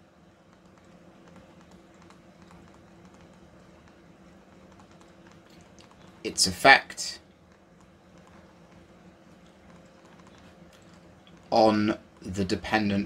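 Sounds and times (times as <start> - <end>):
low electrical hum: 0.0 - 13.0
stylus tapping on a tablet: 0.4 - 6.0.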